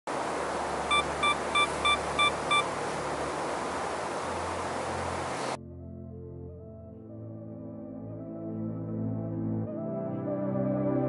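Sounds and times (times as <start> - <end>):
steady hiss: 0.1 - 5.6
short high electronic beeps: 0.9 - 2.7.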